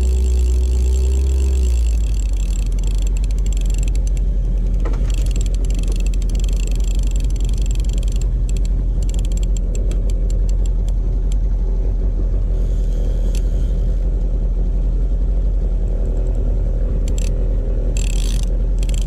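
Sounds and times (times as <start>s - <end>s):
fishing reel clicking: 0.0s - 10.9s, 17.0s - 19.0s
outboard motor running: 0.0s - 19.0s.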